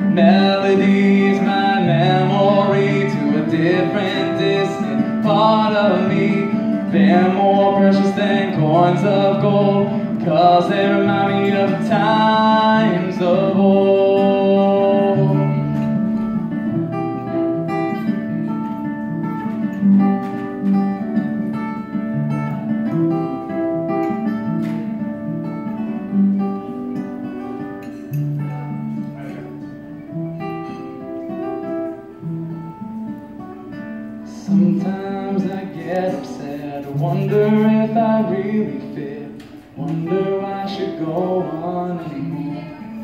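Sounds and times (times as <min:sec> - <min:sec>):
acoustic guitar picked notes: 0:00.0 - 0:43.0.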